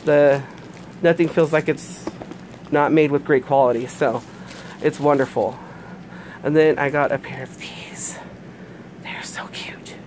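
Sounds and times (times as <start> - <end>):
woman whispering: 7.2 - 8.4, 9.0 - 10.0.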